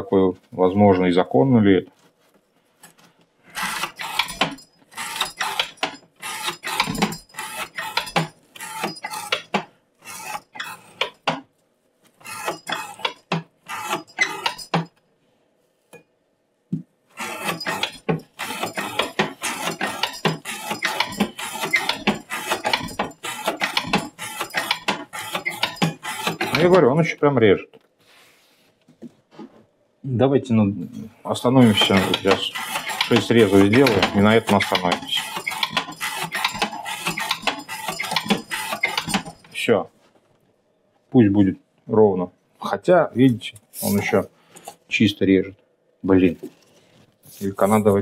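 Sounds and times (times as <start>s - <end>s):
knife rasping through rope: 3.6s - 11.2s, 12.2s - 14.8s, 17.1s - 26.9s, 31.5s - 39.4s.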